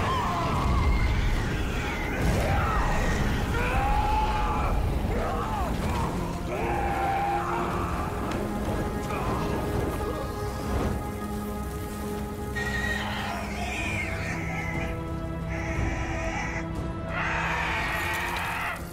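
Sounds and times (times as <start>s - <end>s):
dragon shrieks: 0.0s - 8.2s, 12.6s - 14.9s, 15.5s - 18.9s
background music: 0.0s - 18.9s.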